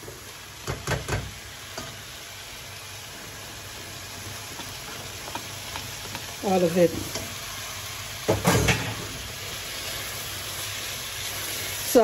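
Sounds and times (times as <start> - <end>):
fish and vegetables sizzling in pan: 0.0 - 12.0.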